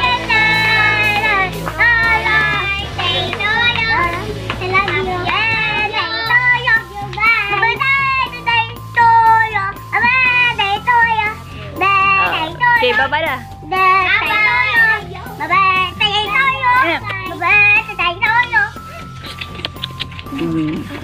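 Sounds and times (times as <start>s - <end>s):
children singing: 0.0s - 8.6s
backing music with bass line: 0.0s - 21.0s.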